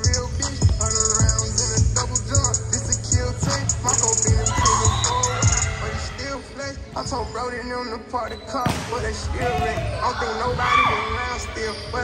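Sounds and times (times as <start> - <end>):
music with singing: 0.0 - 12.0.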